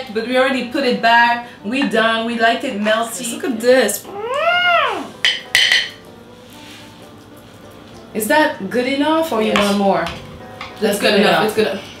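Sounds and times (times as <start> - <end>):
high vocal call: 4.0 - 5.2.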